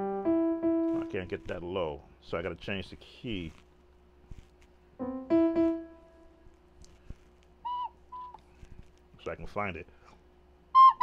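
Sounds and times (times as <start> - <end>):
keyboard notes: 0.0 - 1.7, 5.0 - 6.4.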